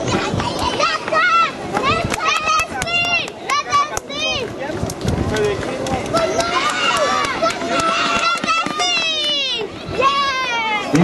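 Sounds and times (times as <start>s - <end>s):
children calling and chattering: 0.0s - 11.0s
crowd of spectators: 0.0s - 11.0s.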